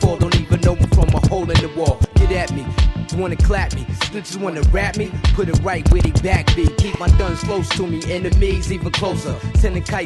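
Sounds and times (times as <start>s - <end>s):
hip-hop drum beat: 0.0s - 10.0s
stuttering rap vocal scratches: 0.0s - 10.0s.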